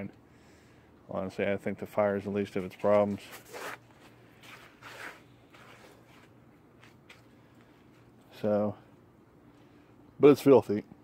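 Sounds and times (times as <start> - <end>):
low steady hum: 0.0 - 11.0
faint rustling and shuffling: 2.0 - 8.5.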